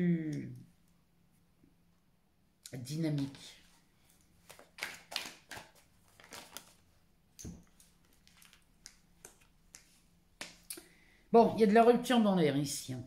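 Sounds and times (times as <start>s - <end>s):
cards rustling and tapping: 4.2s - 6.8s, 7.4s - 10.7s.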